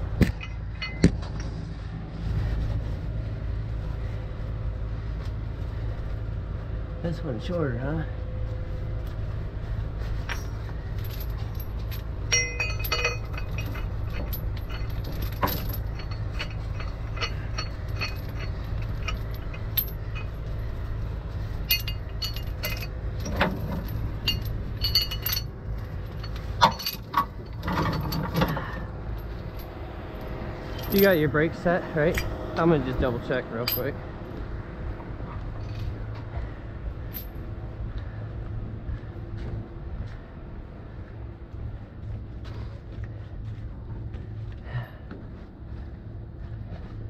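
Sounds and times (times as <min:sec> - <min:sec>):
truck engine running: 0:00.0 - 0:47.0
chain links clinking: 0:00.3 - 0:01.6, 0:10.0 - 0:34.4, 0:35.3 - 0:37.6.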